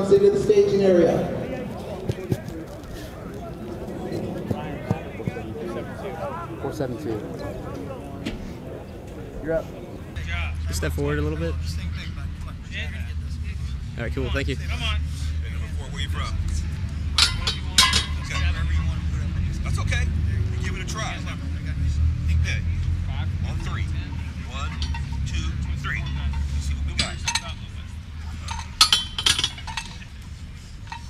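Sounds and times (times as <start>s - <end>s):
faint voices: 0.0s - 14.0s
steady low rumble: 0.0s - 20.0s
barbell plates clinking: 17.2s - 18.8s, 23.5s - 31.0s.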